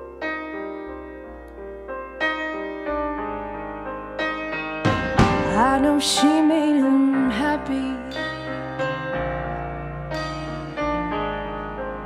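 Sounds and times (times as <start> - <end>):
electric piano chords: 0.0 - 12.0
sharp hit: 4.8 - 5.9.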